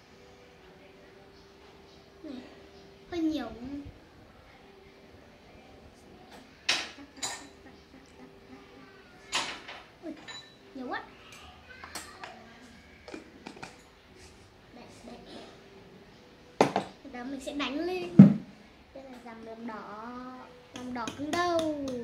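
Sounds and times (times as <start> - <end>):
spoon clinking on glass and metal: 7.2 - 7.6, 10.2 - 10.6.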